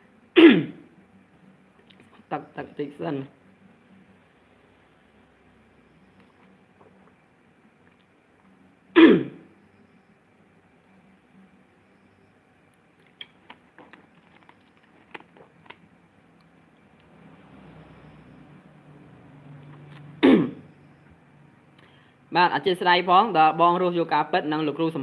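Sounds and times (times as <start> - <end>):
man clearing throat: 0.4 - 0.8, 9.0 - 9.4, 20.2 - 20.6.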